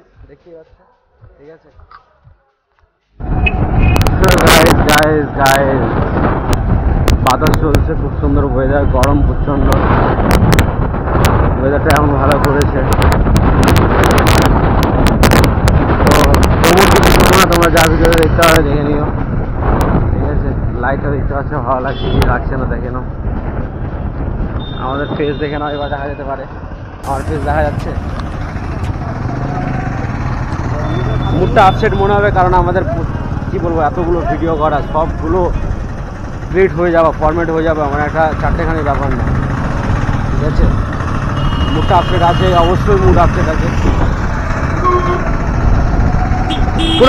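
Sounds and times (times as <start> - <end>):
man's voice: 0.0 - 2.1, 27.0 - 29.6, 30.7 - 35.8
voices talking: 0.0 - 2.8, 27.0 - 45.6
road and wind noise: 0.0 - 47.0
motorbike engine rumble: 26.5 - 47.0.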